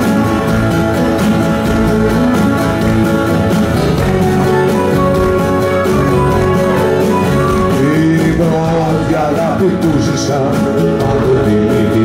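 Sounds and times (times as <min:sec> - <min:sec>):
acoustic folk band playing: 0:00.0 - 0:12.0
man singing: 0:07.5 - 0:12.0.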